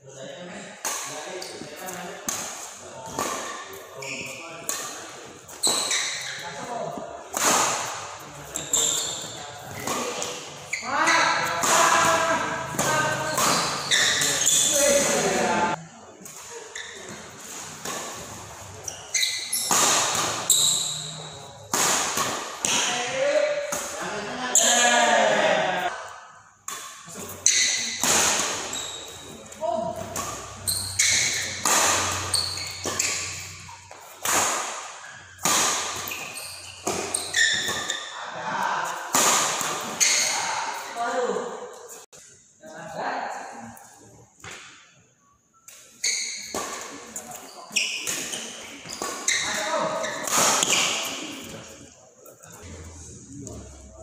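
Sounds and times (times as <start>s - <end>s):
rackets hitting shuttlecock: 7.2s - 15.6s, 16.4s - 24.0s, 26.6s - 38.1s, 46.4s - 51.6s
players calling out: 8.4s - 15.8s.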